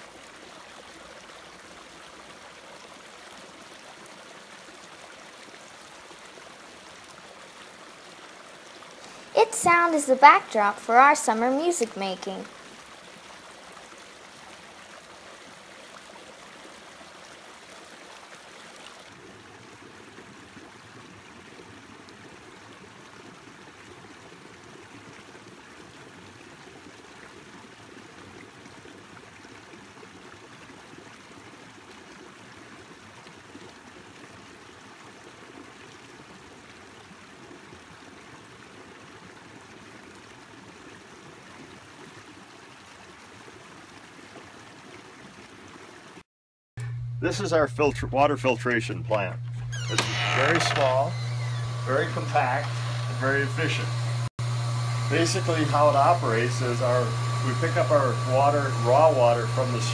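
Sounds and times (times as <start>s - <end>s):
brook running over rocks: 0.0s - 46.2s.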